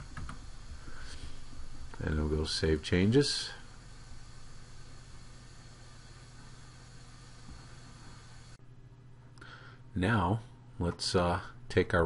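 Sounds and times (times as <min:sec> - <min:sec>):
even hiss: 0:00.0 - 0:08.6
steady low hum: 0:00.0 - 0:12.0.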